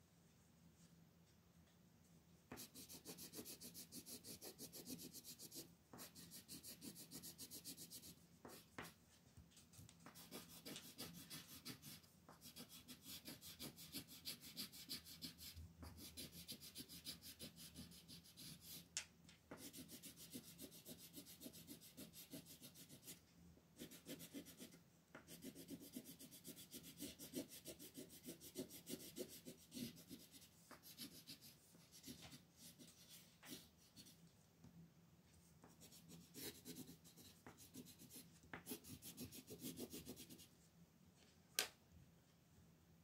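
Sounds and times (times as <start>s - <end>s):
pencil shading on paper: 2.5s - 8.9s, 10.1s - 18.9s, 19.5s - 23.2s, 23.8s - 34.1s, 35.6s - 40.5s.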